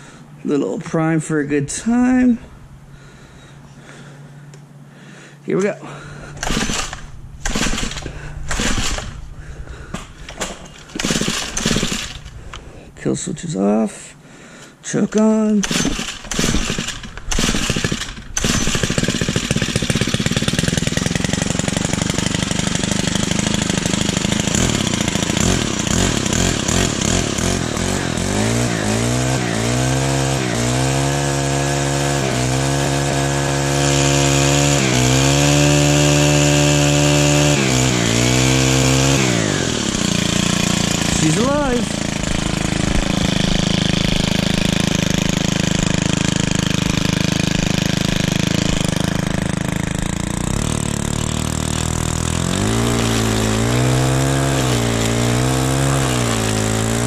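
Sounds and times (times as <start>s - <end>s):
small gas engine running: 1.9s - 57.0s.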